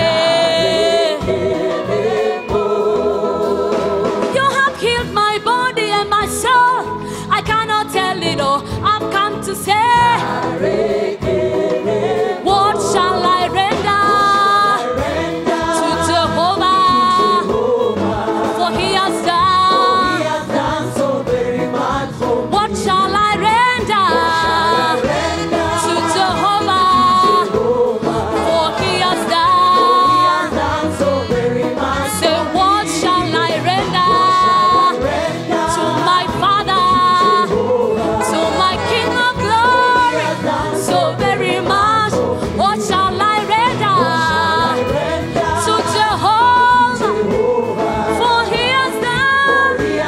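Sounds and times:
men singing backing harmonies: 0:00.0 - 0:04.4, 0:10.0 - 0:50.0
band accompaniment: 0:00.0 - 0:50.0
woman singing lead: 0:00.0 - 0:50.0.

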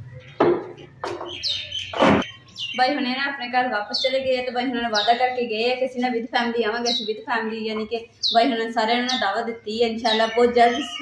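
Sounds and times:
bird chirps: 0:00.0 - 0:05.8, 0:06.6 - 0:11.0
plastic chairs knocking together: 0:00.4 - 0:02.2.

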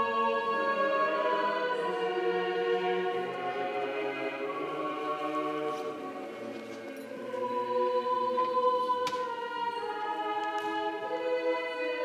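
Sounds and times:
slow hymn singing: 0:00.0 - 0:12.0.

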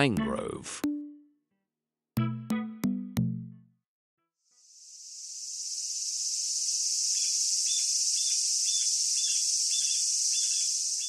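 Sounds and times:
insects buzzing: 0:04.5 - 0:11.0
short insect chirps: 0:04.5 - 0:11.0.

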